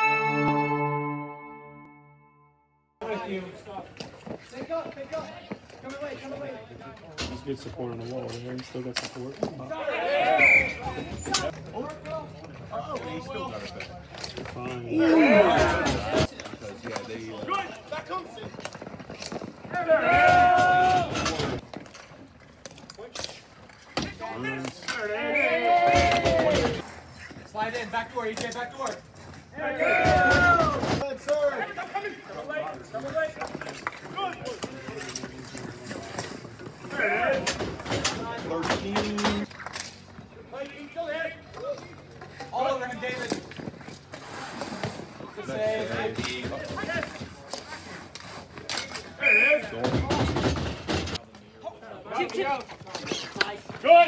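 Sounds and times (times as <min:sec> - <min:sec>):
voices of players and onlookers: 0:03.0 - 0:54.0
man shouting: 0:14.9 - 0:15.9.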